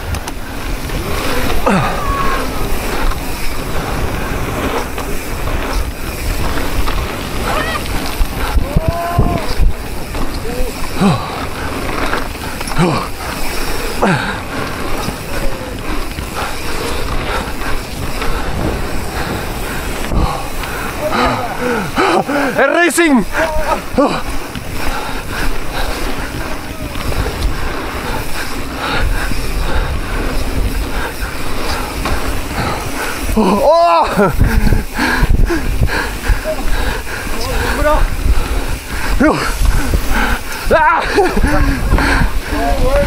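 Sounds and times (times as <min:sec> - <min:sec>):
wind noise on microphone: 0:00.0 - 0:22.6, 0:23.2 - 0:43.0
bike tyre rumble on dirt: 0:00.0 - 0:43.0
riders shouting: 0:00.0 - 0:43.0.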